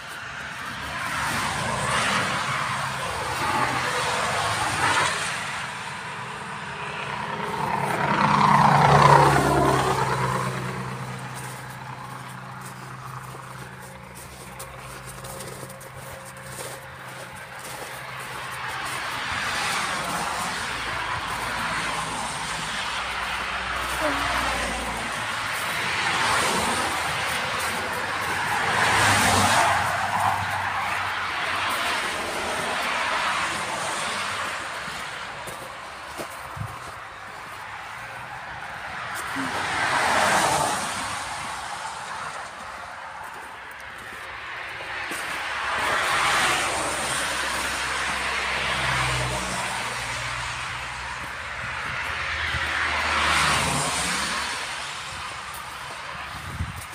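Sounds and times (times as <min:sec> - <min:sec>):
tram running on rails: 0:00.0 - 0:56.9.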